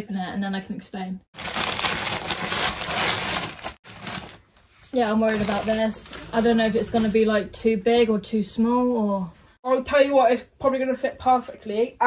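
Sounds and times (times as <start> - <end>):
wrapping paper tearing and crinkling: 1.4 - 7.1.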